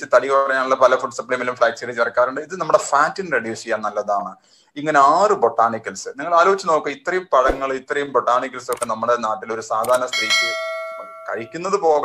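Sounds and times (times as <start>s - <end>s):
bell chime ding: 10.0s - 11.8s.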